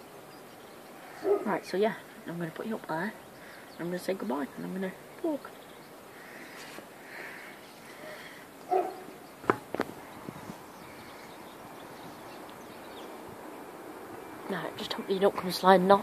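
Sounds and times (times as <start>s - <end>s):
dog barking: 1.2s - 1.5s, 8.7s - 9.1s
camera knocking on perch: 9.4s - 9.9s.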